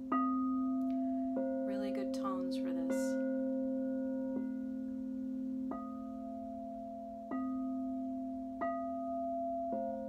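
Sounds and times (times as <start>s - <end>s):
crystal singing bowls ringing: 0.0s - 10.0s.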